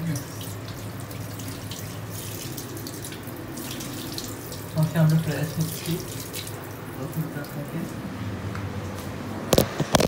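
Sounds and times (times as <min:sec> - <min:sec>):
water running from a tap: 0:00.0 - 0:08.0.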